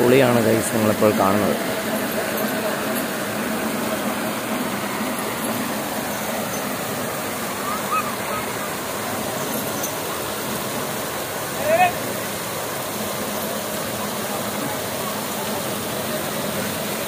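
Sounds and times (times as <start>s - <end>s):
water spraying and splashing: 0.0s - 17.0s
murmur of crowd voices: 13.4s - 17.0s.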